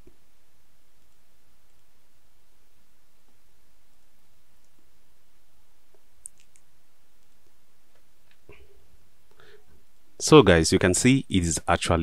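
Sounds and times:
faint steady hiss: 0.0s - 12.0s
computer mouse clicks: 6.2s - 7.6s.

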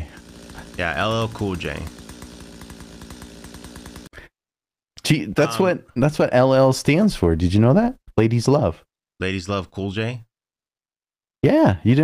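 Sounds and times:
chainsaw engine running: 0.0s - 4.3s.

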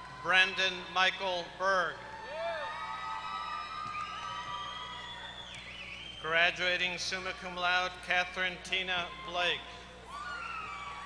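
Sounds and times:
people whistling: 3.8s - 6.5s.

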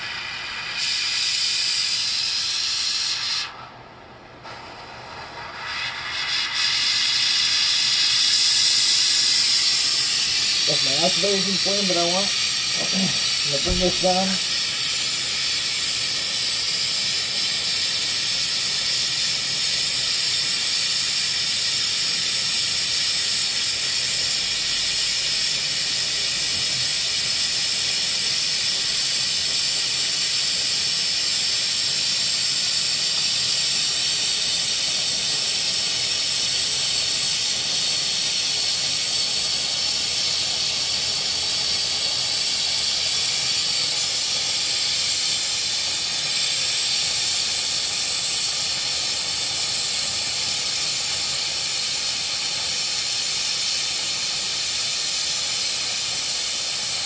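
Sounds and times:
torch flame hissing: 0.0s - 57.0s.

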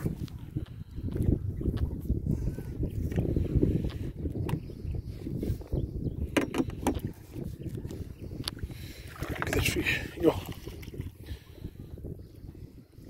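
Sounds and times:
wind buffeting microphone: 0.0s - 13.0s
water against boat: 6.2s - 11.8s.

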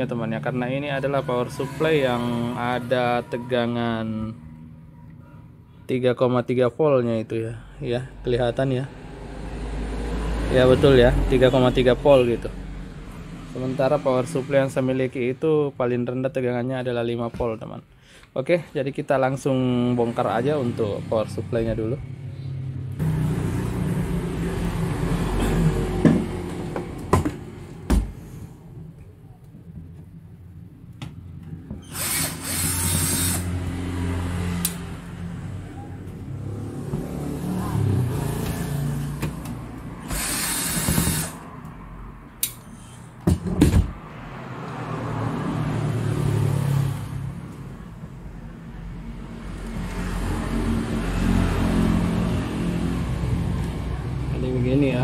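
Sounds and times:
power tool bursts: 31.8s - 33.6s, 40.0s - 41.4s.

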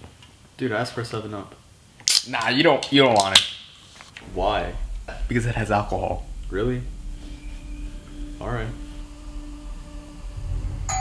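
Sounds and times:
low background rumble: 4.1s - 11.0s.

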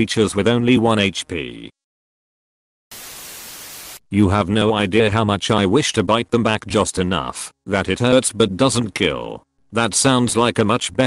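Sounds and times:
static hiss burst: 2.9s - 4.0s.

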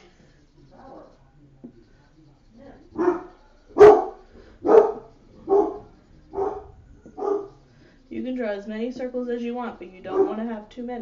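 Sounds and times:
dog barking: 2.9s - 7.6s, 10.1s - 10.5s.

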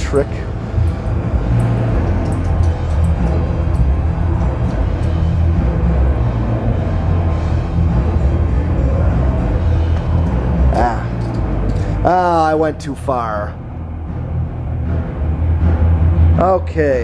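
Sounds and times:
ceiling fan motor humming: 0.0s - 16.6s.

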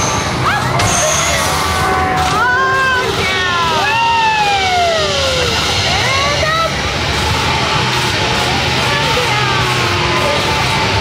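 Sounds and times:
fairground din: 0.0s - 11.0s
people screaming and whooping: 0.0s - 11.0s.

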